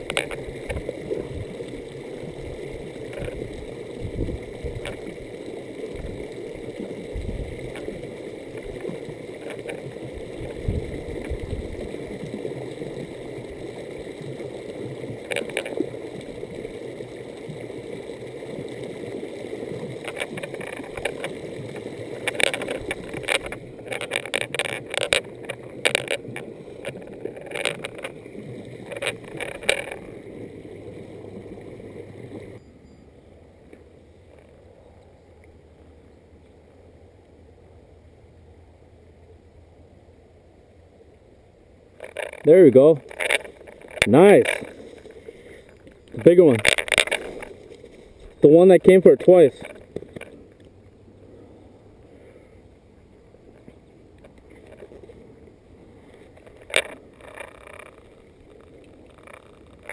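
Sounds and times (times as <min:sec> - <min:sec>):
wind buffeting the microphone: 0:03.2 - 0:04.9, 0:07.1 - 0:07.6, 0:10.4 - 0:11.8
rustling of tall grass: 0:42.0 - 0:50.6.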